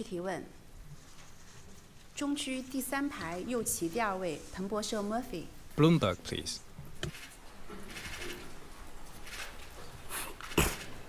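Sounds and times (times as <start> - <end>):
audience rustling and shuffling: 0.8 - 5.0, 7.0 - 11.0.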